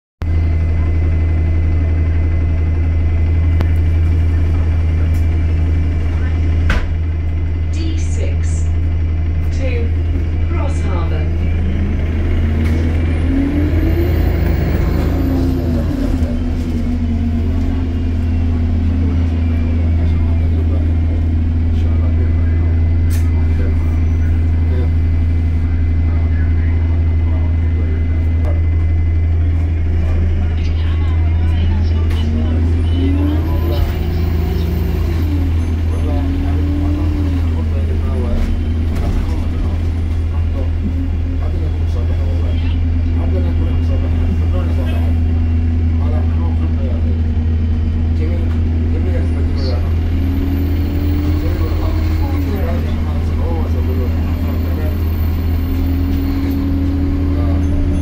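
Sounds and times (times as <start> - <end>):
bus diesel engine: 0.2 - 58.0
high transmission whine: 0.2 - 58.0
steady low drone: 0.2 - 58.0.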